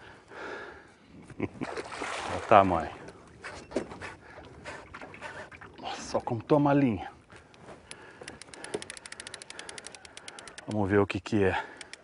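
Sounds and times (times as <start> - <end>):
fish splashing at water surface: 1.6 - 2.6
faint scattered clicks: 7.4 - 12.0.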